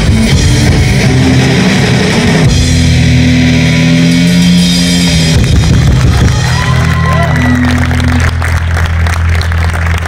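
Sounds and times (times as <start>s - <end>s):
bass guitar: 0.0s - 10.0s
drums: 0.0s - 10.0s
electric guitar chords: 0.0s - 10.0s.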